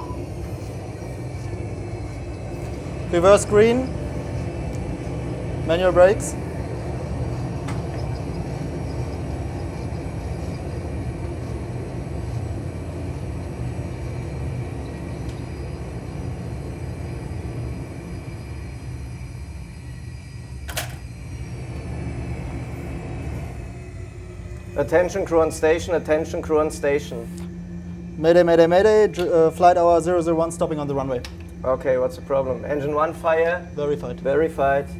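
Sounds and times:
jet engine and runway rumble: 0.0 - 34.9.

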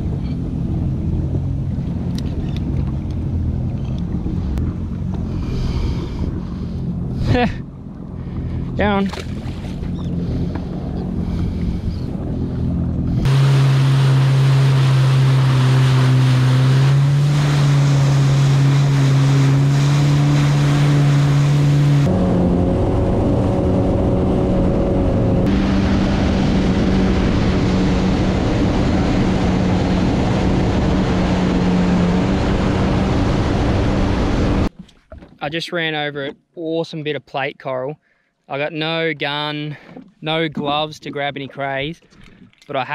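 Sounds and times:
water rushing and splashing: 0.0 - 35.4, 39.5 - 42.9
jet ski engine running: 0.0 - 35.5
wind on microphone: 8.2 - 14.4.

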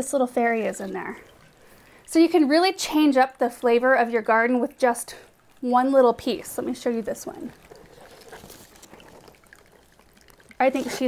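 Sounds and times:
water feature trickling: 0.0 - 11.0.

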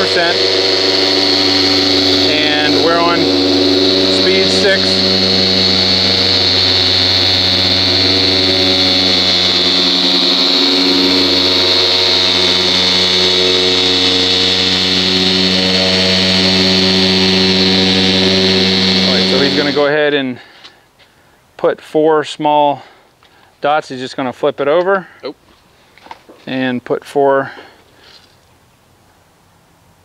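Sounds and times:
polisher motor whining: 0.0 - 20.2.

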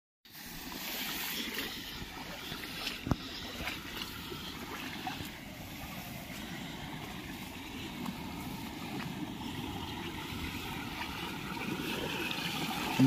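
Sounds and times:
water rushing through channel: 0.3 - 13.0.

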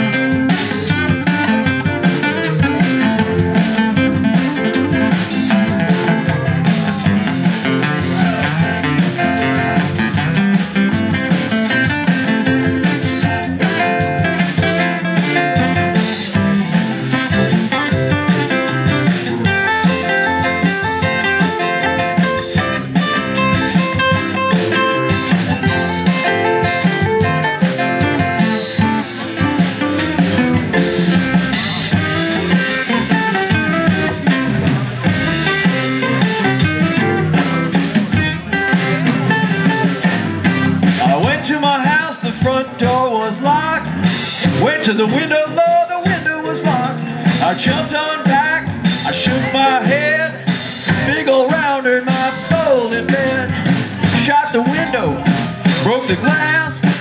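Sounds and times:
live blues band guitars: 0.0 - 57.0.

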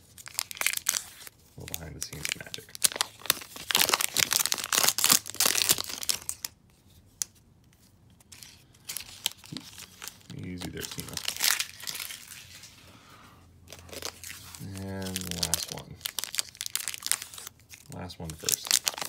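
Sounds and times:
wrapper tearing and crinkling: 0.0 - 6.6, 8.4 - 12.8, 13.7 - 19.0.

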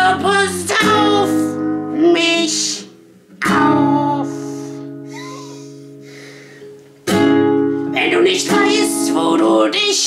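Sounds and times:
acoustic guitar chord ringing: 0.0 - 9.5.

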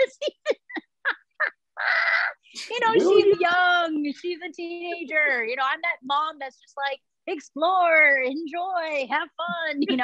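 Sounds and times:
woman laughing: 0.0 - 3.6
person speaking: 2.6 - 5.6.

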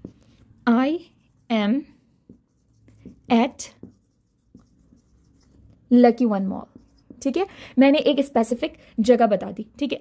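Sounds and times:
marker writing on a whiteboard: 0.0 - 8.5
woman speaking: 0.6 - 2.0, 3.2 - 4.0, 5.9 - 10.0.

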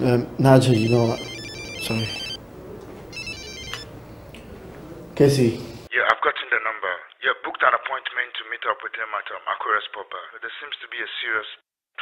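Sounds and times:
mobile phone ringtone melody: 0.7 - 2.4, 3.1 - 3.9.

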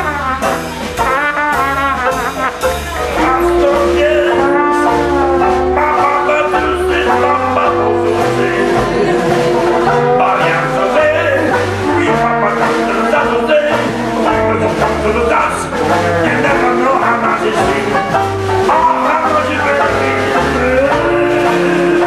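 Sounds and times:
bass line: 0.0 - 22.0
live jazz band playing: 0.0 - 22.0
man singing into a microphone: 3.2 - 22.0.

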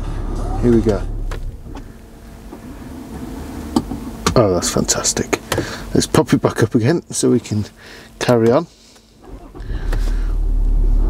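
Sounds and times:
diesel engine starting and idling: 0.0 - 5.8, 9.2 - 11.0.

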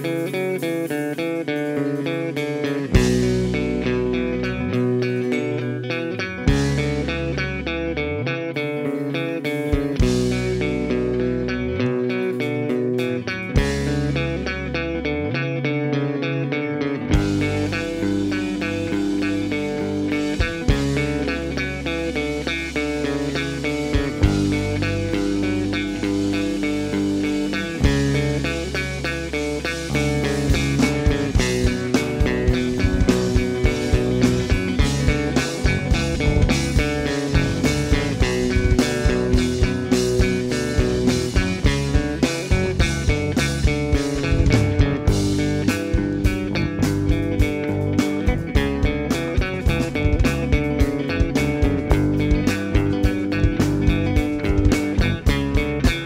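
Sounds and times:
drum kit with cymbal crashes: 0.0 - 5.4, 6.5 - 7.4, 9.7 - 11.1, 17.2 - 56.0
bass guitar notes: 0.0 - 56.0
electric guitar riff: 0.0 - 56.0.

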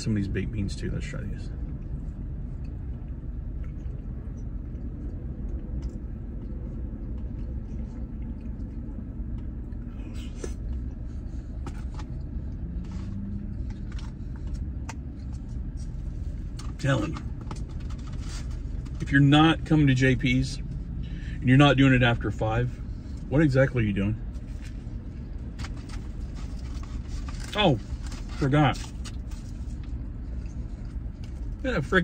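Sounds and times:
car engine idling: 0.0 - 32.0.

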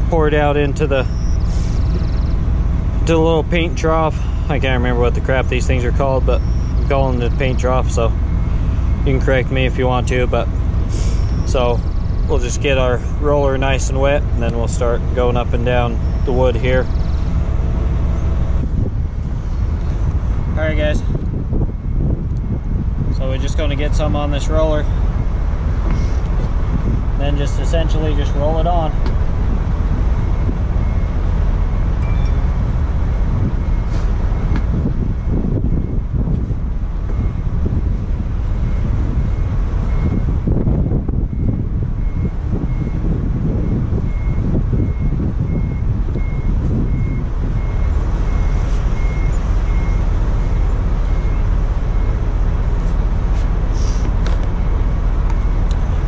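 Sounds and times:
wind buffeting microphone: 0.0 - 56.0
distant reversing alarm beeps: 0.3 - 26.3, 27.2 - 53.8, 54.5 - 56.0.

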